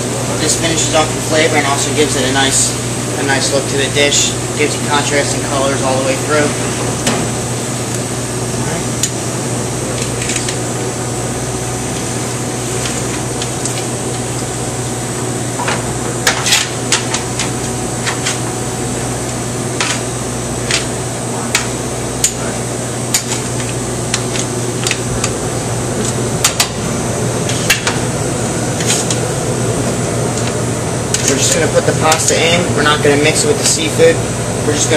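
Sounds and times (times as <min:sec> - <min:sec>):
kitchen ventilation hum: 0:00.0 - 0:34.9.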